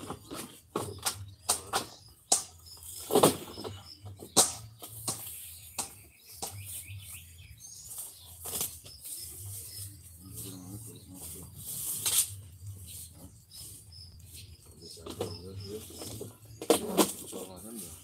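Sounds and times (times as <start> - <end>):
sharp knocks: 0.0 - 6.7
small birds chirping: 0.0 - 18.0
low voices: 9.2 - 18.0.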